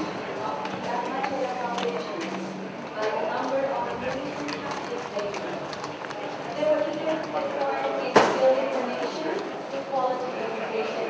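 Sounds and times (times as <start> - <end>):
indistinct conversation: 0.0 - 11.0
footsteps on tiled floor: 0.1 - 8.0.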